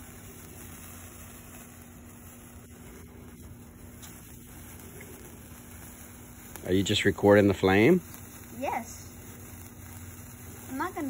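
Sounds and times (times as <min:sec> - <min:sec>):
low hum: 0:00.0 - 0:11.0
sparkler fizzing hiss: 0:00.0 - 0:11.0.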